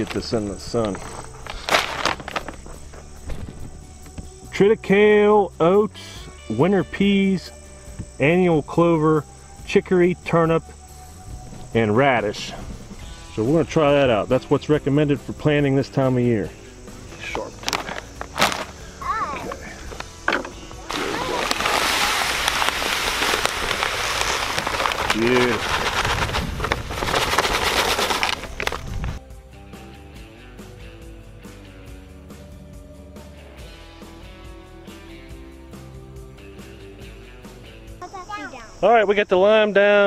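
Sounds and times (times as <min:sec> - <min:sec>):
plastic bag rustling: 0:00.0 - 0:03.8, 0:17.2 - 0:19.7, 0:20.8 - 0:29.2
seeds pouring hiss: 0:00.0 - 0:03.8, 0:16.4 - 0:20.2, 0:20.8 - 0:29.2.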